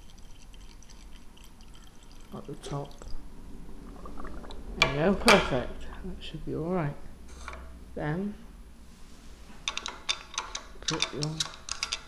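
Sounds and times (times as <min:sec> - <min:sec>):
liquid trickling into plastic bottle: 0:00.0 - 0:03.2, 0:03.9 - 0:04.7.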